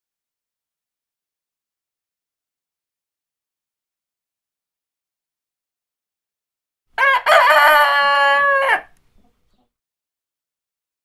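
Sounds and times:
rooster crowing: 7.0s - 9.0s.

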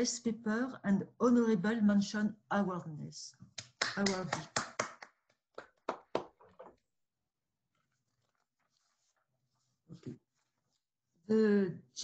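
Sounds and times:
person clapping: 3.6s - 6.5s.

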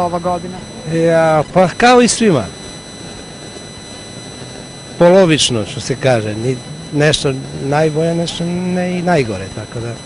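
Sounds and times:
street background hiss and rumble: 0.0s - 10.0s.

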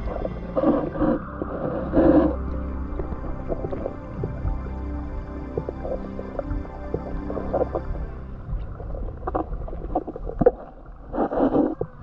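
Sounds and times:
low underwater rumble: 0.0s - 12.0s
underwater pops and knocks: 5.5s - 10.8s.

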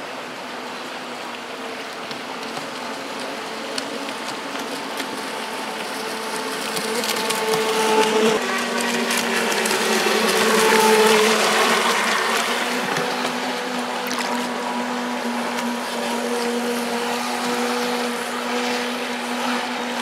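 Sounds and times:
river water rushing: 0.0s - 20.0s
small boat engine whining: 0.0s - 20.0s.

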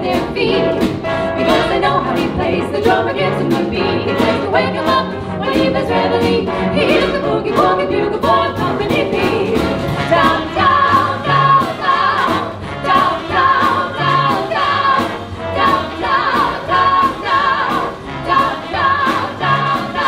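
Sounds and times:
big band playing swing: 0.0s - 20.0s
female vocal trio singing: 0.0s - 20.0s.

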